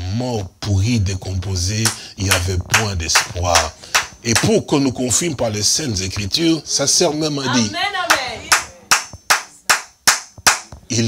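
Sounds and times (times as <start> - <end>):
hands clapping: 1.8 - 4.6, 7.5 - 11.0.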